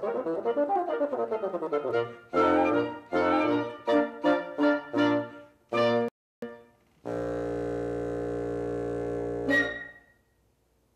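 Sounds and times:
wind quintet playing chords: 1.7s - 6.1s, 7.1s - 9.9s
low bassoon note: 5.8s - 10.0s.

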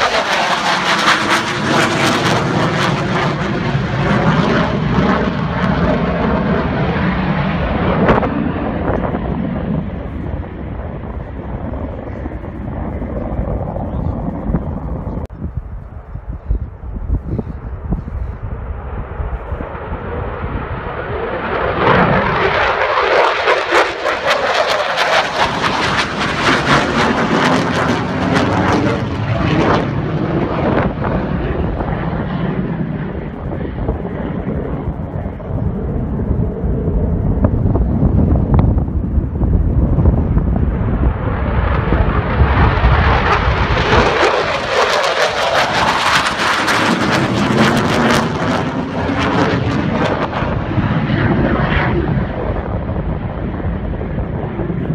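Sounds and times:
fighter jet flying past: 0.0s - 54.9s.

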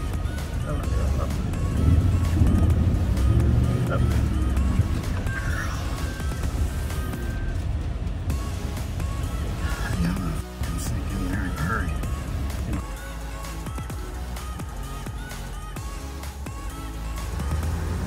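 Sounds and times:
background music: 0.0s - 18.0s
truck engine and tyres rumbling: 0.0s - 18.0s.

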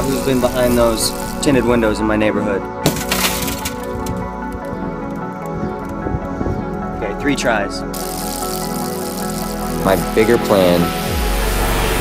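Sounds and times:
background music: 0.0s - 12.0s
car window glass shattering: 2.8s - 4.2s.

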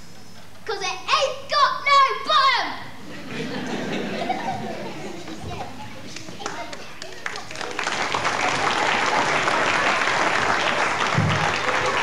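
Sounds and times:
babble of children's voices: 4.5s - 7.9s.

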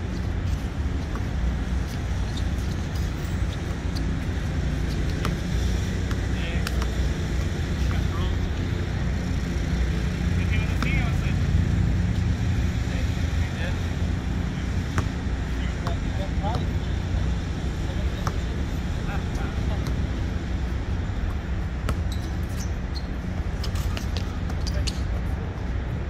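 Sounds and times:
road traffic rumble: 0.0s - 26.0s
basketball bouncing: 2.0s - 8.0s, 14.9s - 15.2s, 21.8s - 25.0s.

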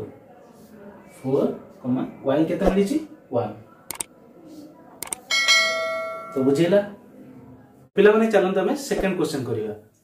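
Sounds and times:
mouse clicks: 3.9s - 4.1s, 5.0s - 5.3s.

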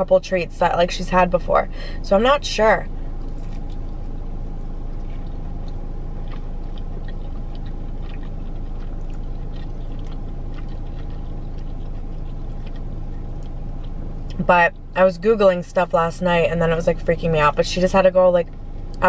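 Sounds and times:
car cabin hum: 0.0s - 19.0s
person chewing crunchy food: 2.9s - 14.9s.

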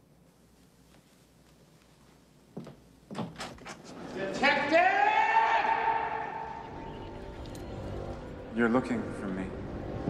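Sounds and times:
man shouting: 4.4s - 6.6s.

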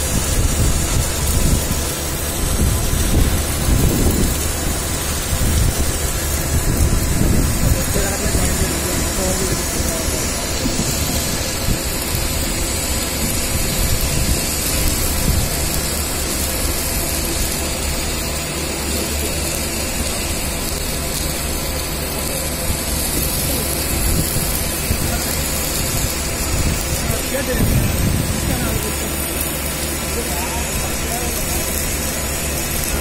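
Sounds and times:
welding machine noise: 0.0s - 33.0s.

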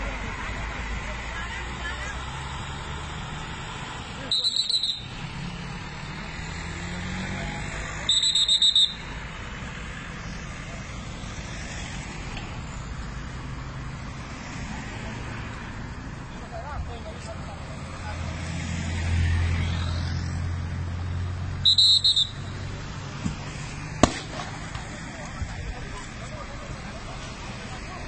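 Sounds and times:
road noise rumble: 0.0s - 28.0s
electronic alarm beeping: 4.3s - 5.1s, 8.1s - 9.0s.

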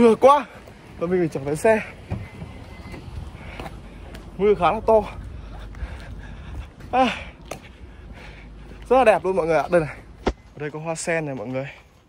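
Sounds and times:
wind rumble on microphone: 2.0s - 8.2s.

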